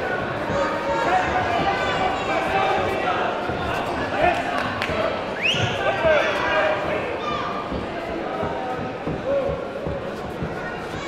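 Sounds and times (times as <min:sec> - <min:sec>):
shouting voices in echoing hall: 0:00.0 - 0:11.0.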